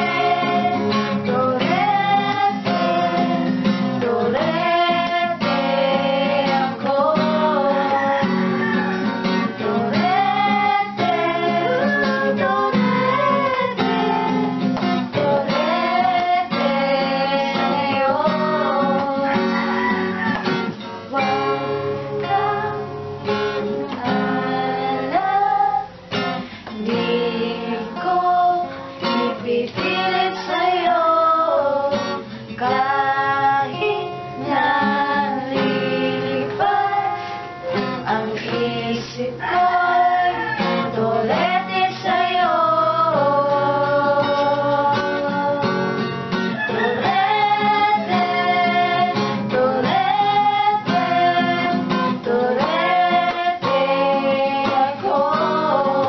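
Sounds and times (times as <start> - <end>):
acoustic guitar strumming: 0.0 - 56.0
women singing together: 0.0 - 56.0.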